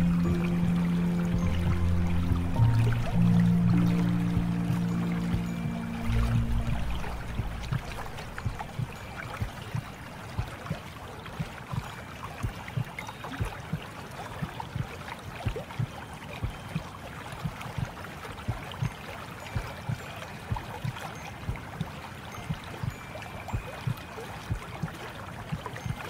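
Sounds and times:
soft low thuds: 0:00.0 - 0:10.8
water lapping and gurgling: 0:00.0 - 0:26.0.

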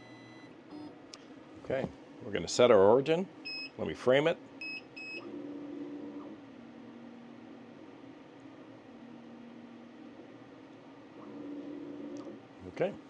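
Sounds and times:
laser engraver motors humming: 0:04.6 - 0:12.9.

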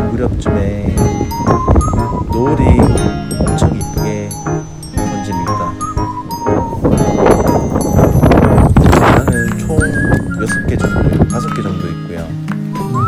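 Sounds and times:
music with sliding melody and percussion: 0:00.0 - 0:13.0.

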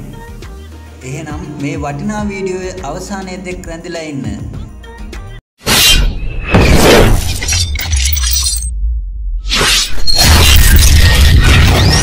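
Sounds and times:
sharp crashing impacts: 0:05.6 - 0:08.7.

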